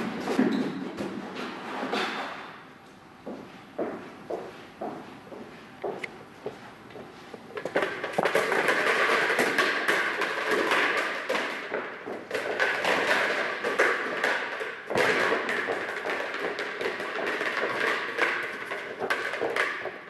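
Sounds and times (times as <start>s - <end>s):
footsteps in echoing hall: 0.0s - 20.0s
rubber ball bouncing and rolling: 7.0s - 20.0s.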